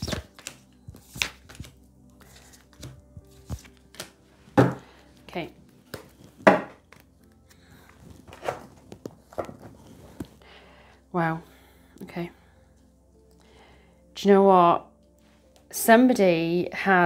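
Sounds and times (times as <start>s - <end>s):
faint background music: 0.0s - 17.0s
cards tapping on a table: 2.8s - 4.8s, 5.9s - 7.0s.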